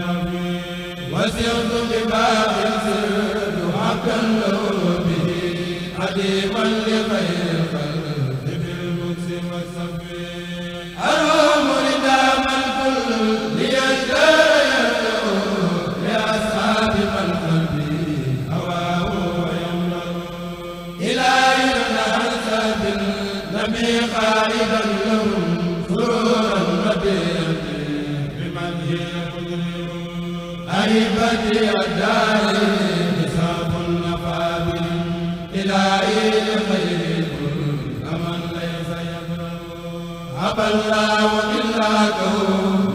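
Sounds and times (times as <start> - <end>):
men chanting devotional verse: 0.0 - 42.9.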